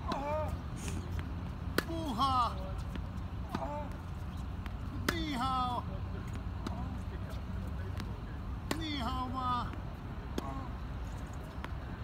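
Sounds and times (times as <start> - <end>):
tennis racket hitting ball: 1.1 - 4.0.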